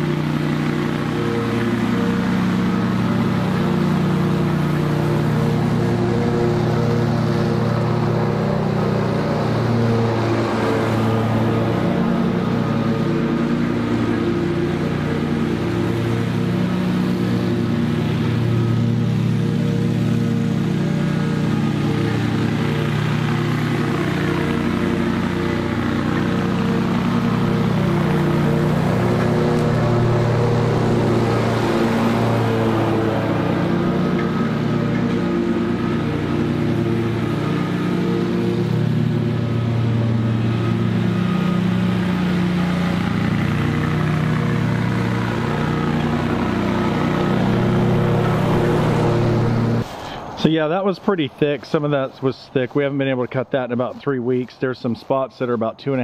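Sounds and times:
lawn mower cutting grass: 0.0 - 56.0.

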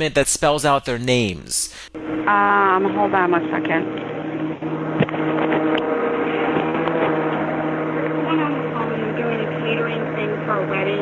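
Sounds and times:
low telephone line hum: 2.0 - 11.0.

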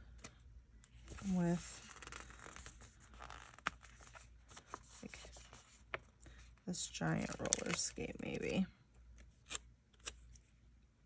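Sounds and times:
paper sheets rustling: 1.0 - 6.0.

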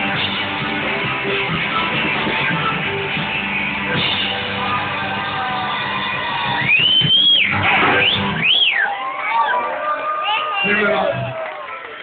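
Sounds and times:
loud high whistle: 6.4 - 9.6.

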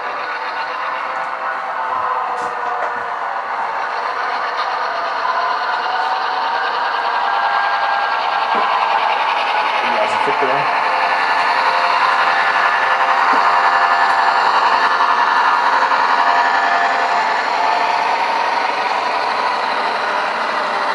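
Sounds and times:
model train motor and wheels: 0.0 - 20.9.

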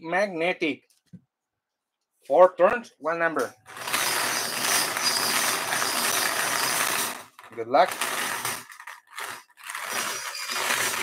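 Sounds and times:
bingo balls rattling in wire cage: 3.6 - 11.0.

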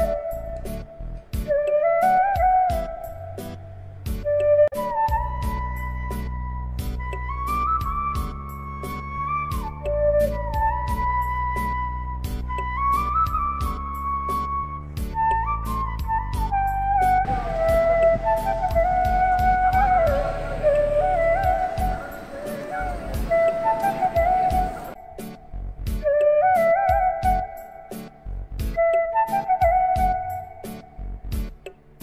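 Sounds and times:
flute melody: 0.0 - 31.6
bass: 0.0 - 32.0
steady beat: 17.0 - 25.0.

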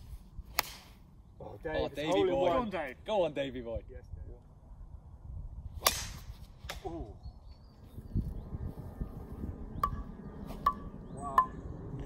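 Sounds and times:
steady low rumble: 7.3 - 12.0.

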